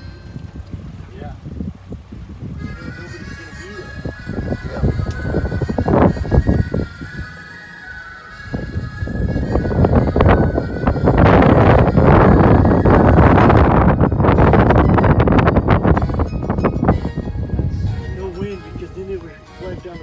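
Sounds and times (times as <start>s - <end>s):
wind buffeting microphone: 0.0s - 20.0s
faint music: 15.6s - 20.0s.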